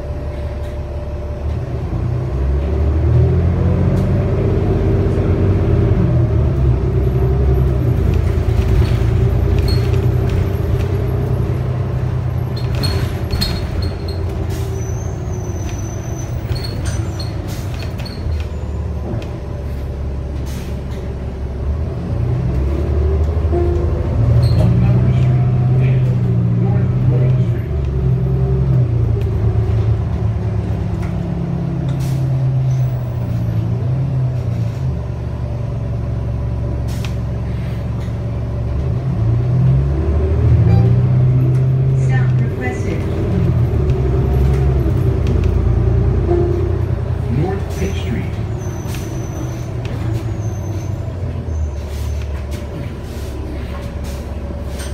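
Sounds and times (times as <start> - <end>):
bus engine drone: 0.0 - 54.9.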